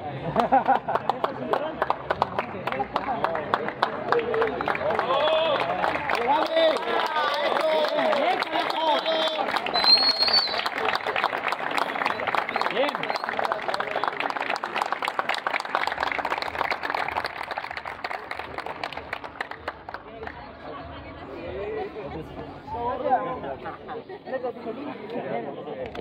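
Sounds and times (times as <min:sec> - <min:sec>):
hubbub of voices: 0:00.0 - 0:26.0
crowd clapping: 0:00.4 - 0:20.5.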